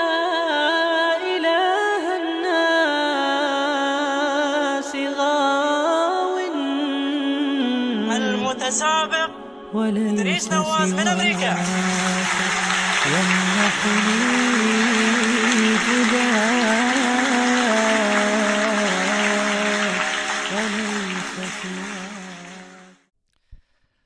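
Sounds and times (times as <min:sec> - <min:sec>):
music with sung melody: 0:00.0 - 0:23.1
audience applause: 0:11.0 - 0:23.0.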